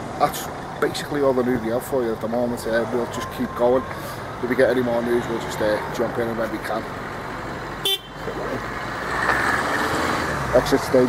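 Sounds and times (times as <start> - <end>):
vehicle passing: 0.0 - 11.0.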